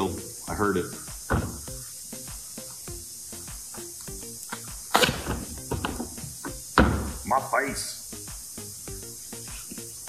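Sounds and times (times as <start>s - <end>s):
background music: 0.0s - 10.0s
handling knocks: 1.3s - 1.8s, 5.0s - 7.3s.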